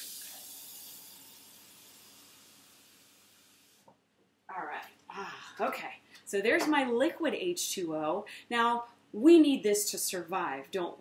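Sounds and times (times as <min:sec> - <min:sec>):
faucet running water into a glass: 0:00.0 - 0:03.8.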